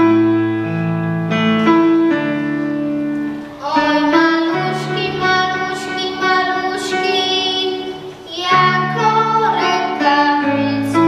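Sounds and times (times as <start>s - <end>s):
instrumental accompaniment: 0.0s - 11.0s
children singing a carol: 3.6s - 11.0s.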